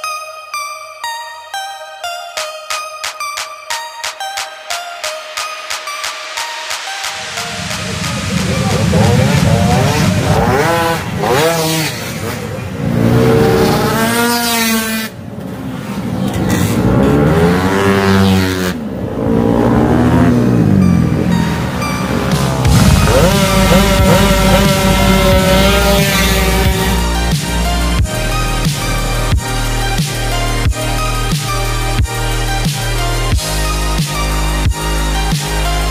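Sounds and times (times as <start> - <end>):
electronic music with beat: 0.0 - 12.4, 19.8 - 35.9
scooter engines accelerating: 7.2 - 35.9.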